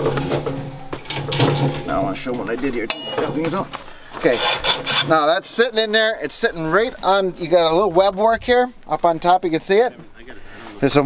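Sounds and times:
barbed wire scraping against steel: 2.9s - 5.8s.

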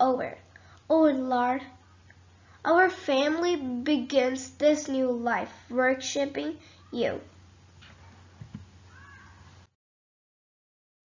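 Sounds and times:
soft knocks: 7.8s - 8.7s.

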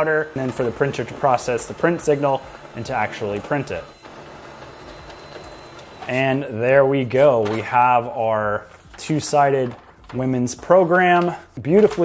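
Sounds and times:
laser printer printing: 0.0s - 8.1s.

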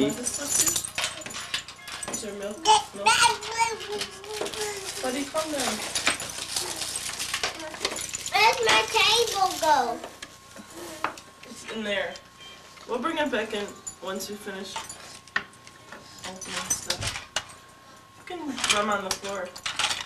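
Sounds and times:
gift packaging rustling: 0.0s - 10.1s.

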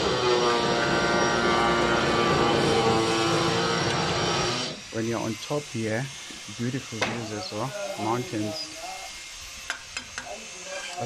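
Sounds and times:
engine running with pitched drone: 0.0s - 6.9s.

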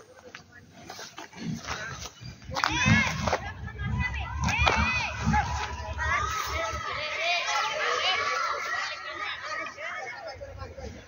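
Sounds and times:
children calling and shouting: 1.6s - 11.0s.

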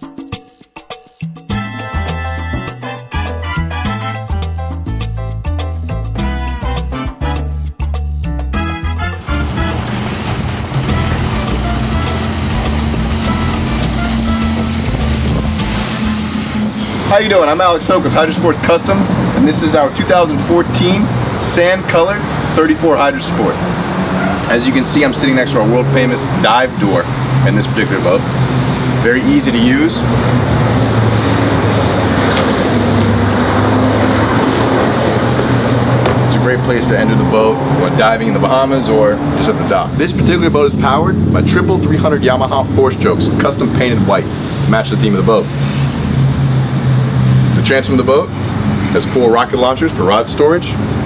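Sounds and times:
latin background music: 0.0s - 44.2s
boat engine drone: 8.6s - 51.0s
hull spray and wind rushing: 8.6s - 51.0s.

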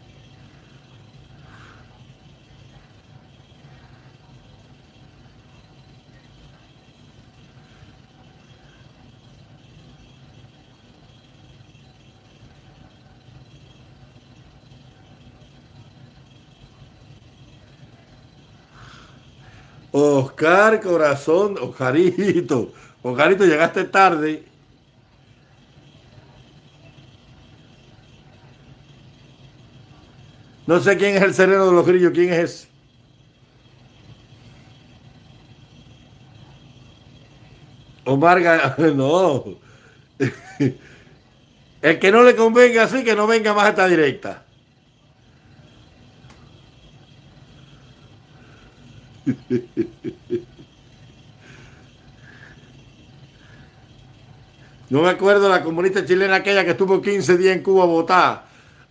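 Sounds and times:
faint low hum with hiss: 0.0s - 58.9s.

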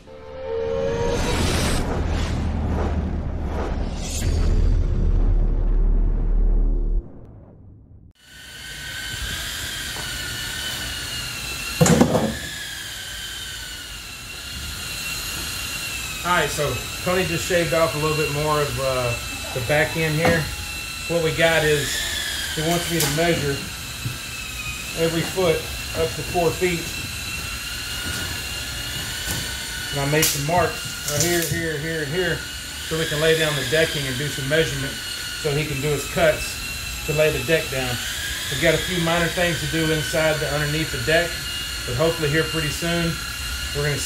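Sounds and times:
power tool whining: 8.2s - 44.0s.

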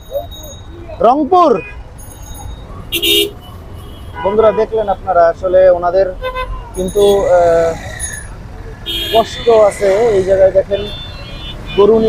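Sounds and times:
vehicle engines: 0.0s - 12.0s
man's voice: 11.6s - 12.0s.

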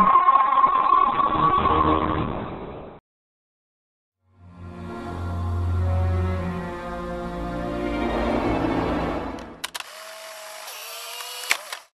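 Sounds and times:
music: 4.2s - 9.6s
mechanical whirr: 9.6s - 11.9s
sharp clicks: 10.6s - 11.9s.

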